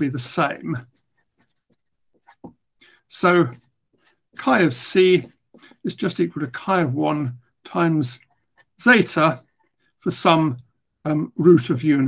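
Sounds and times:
marker writing on paper: 0.0 - 7.0, 7.7 - 10.0.

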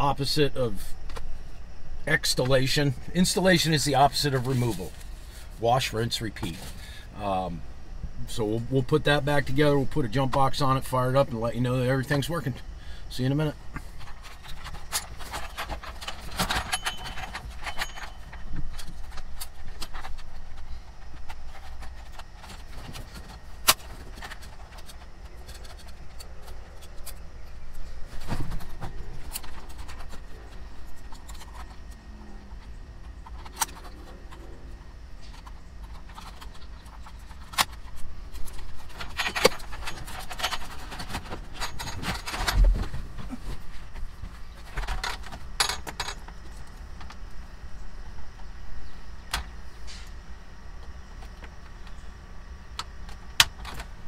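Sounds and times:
low steady hum: 0.0 - 54.0
keys jingling: 14.1 - 20.6, 35.3 - 42.7.

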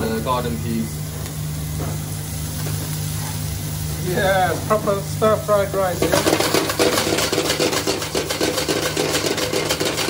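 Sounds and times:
steady low hum: 0.0 - 10.0
food sizzling in a wok: 0.9 - 10.0.

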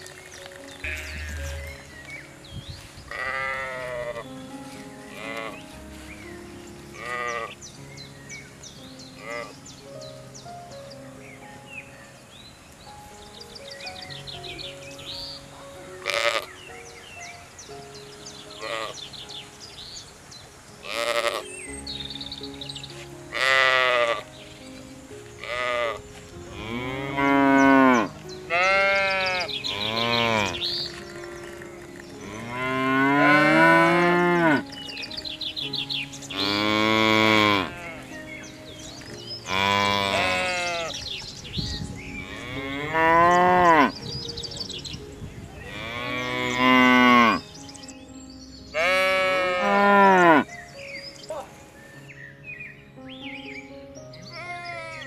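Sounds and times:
cattle mooing: 25.6 - 30.6, 31.5 - 34.6, 36.4 - 38.0, 39.5 - 40.9, 42.2 - 43.9, 48.8 - 50.4.

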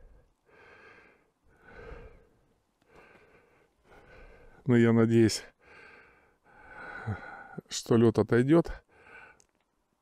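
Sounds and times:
person breathing softly: 0.0 - 4.7, 5.5 - 7.7, 8.8 - 9.6.

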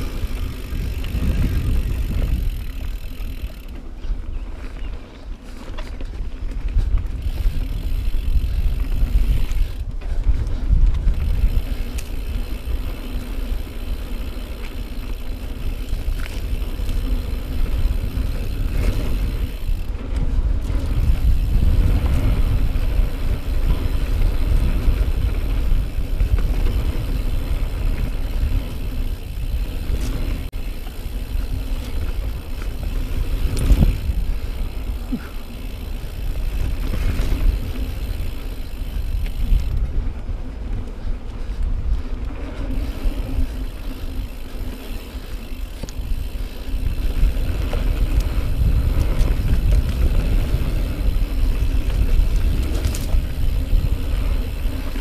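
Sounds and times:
bike rattling over bumps: 0.0 - 55.0
bike tyres rolling over dirt: 0.0 - 55.0
wind rumble on microphone: 0.0 - 55.0.

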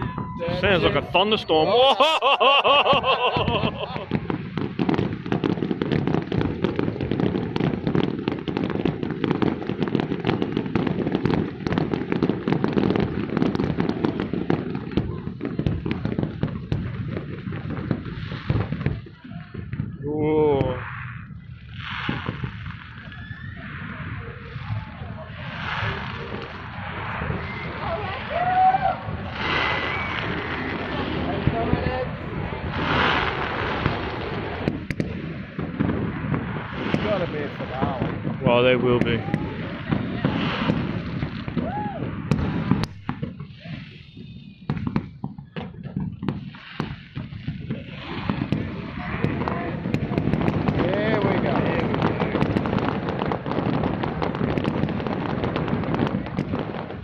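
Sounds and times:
fireworks bangs and crackles: 0.0 - 57.0.

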